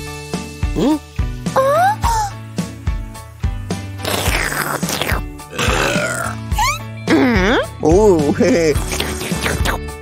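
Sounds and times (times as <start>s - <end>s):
background music with beat: 0.0s - 4.0s
spluttering and spitting: 4.0s - 6.4s, 8.8s - 9.9s
cartoon drinking sound: 4.0s - 7.4s.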